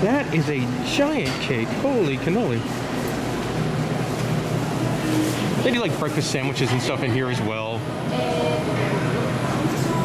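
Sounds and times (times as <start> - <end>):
busy cafe din: 0.0 - 10.0.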